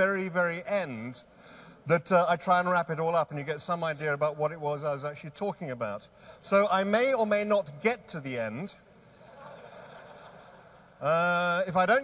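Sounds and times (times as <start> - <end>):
faint audience noise in a hall: 0.0 - 12.0.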